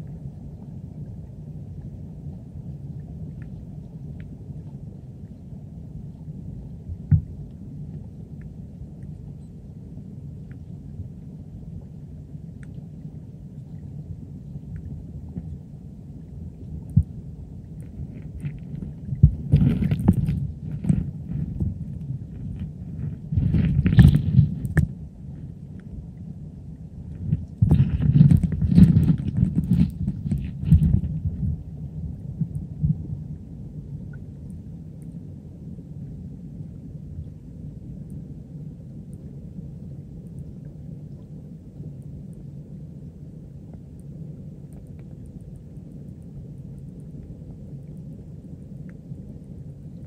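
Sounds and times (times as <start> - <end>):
muffled underwater stream rumble: 0.0 - 50.0.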